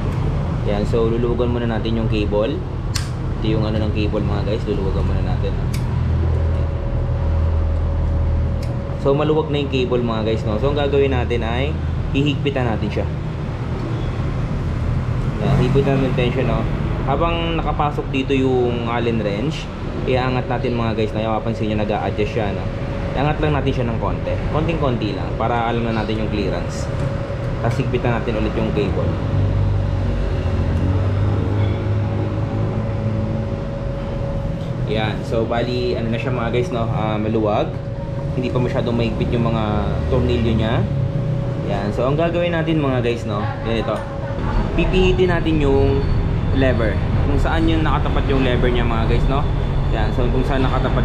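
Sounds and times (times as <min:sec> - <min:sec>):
low mechanical hum: 0:00.0 - 0:51.0
allen key click: 0:03.0 - 0:03.2.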